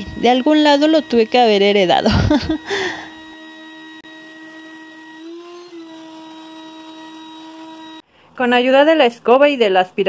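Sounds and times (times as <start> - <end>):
vacuum cleaner whining: 0.0 - 8.1.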